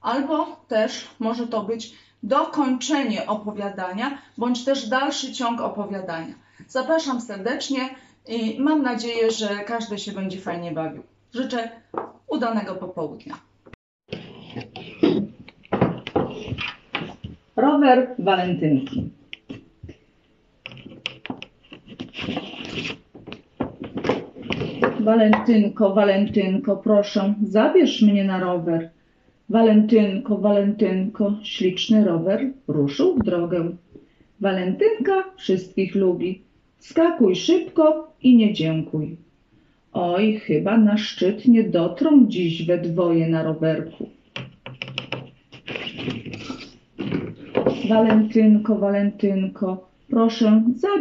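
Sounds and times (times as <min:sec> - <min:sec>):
card scraping against wood: 0:14.1 - 0:15.4, 0:20.7 - 0:25.0
knocks on wood: 0:15.7 - 0:17.4, 0:23.2 - 0:25.5.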